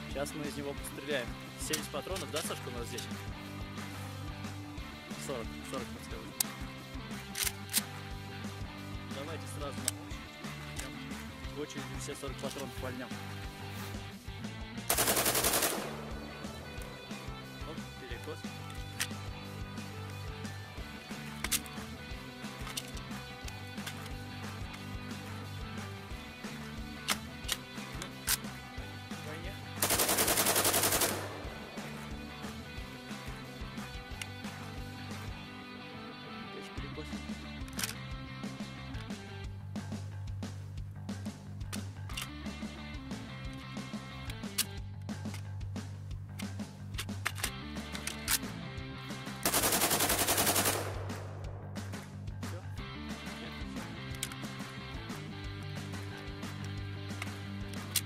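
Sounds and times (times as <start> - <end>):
music with steady beat: 0.0 - 36.2, 36.8 - 58.0
rifle firing blanks on full auto: 14.9 - 17.0, 29.8 - 32.0, 49.4 - 51.7.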